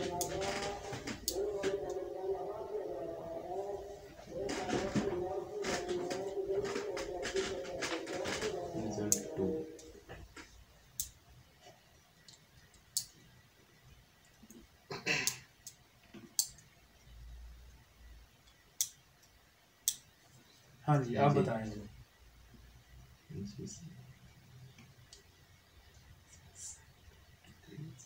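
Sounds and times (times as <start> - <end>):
person speaking: 0.0 - 10.4.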